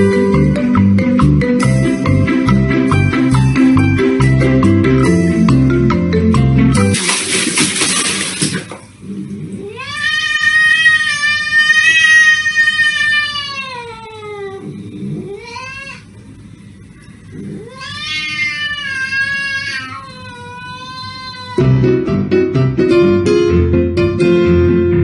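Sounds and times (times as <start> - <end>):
cat yowling: 9.6 - 16.1, 17.4 - 21.8.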